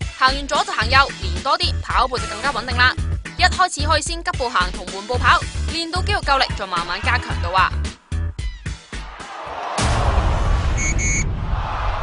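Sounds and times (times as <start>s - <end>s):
short high beeps: 10.8s - 11.2s.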